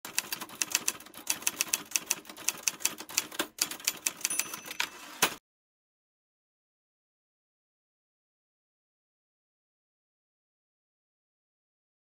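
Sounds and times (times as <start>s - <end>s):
typewriter key strikes: 1.5s - 5.4s.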